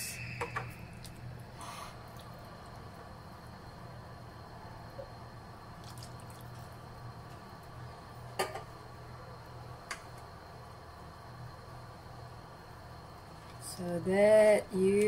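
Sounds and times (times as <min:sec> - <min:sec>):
low hum: 0:00.0 - 0:15.0
milk pouring: 0:05.7 - 0:06.9.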